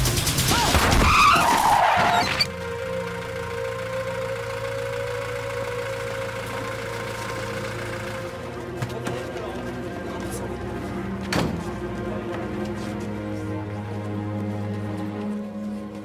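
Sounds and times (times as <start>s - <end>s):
low droning background music: 0.0s - 16.0s
tyres skidding and squealing: 0.4s - 2.6s.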